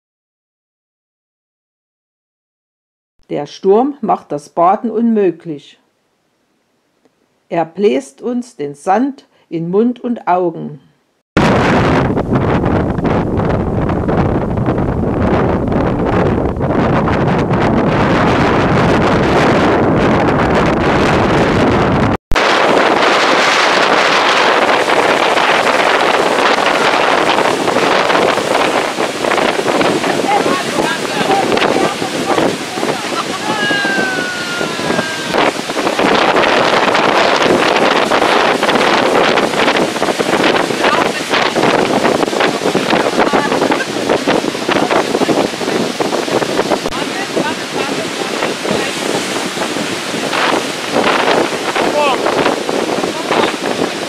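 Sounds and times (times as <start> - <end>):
sea surf breaking: 11.4 - 54.0
wind buffeting microphone: 11.4 - 54.0.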